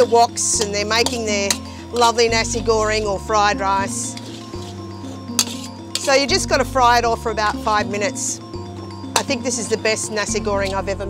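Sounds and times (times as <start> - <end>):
metal spatula clinking on wok: 0.0 - 2.4, 5.3 - 6.3, 9.2 - 9.8
background music with sustained notes: 0.0 - 11.0.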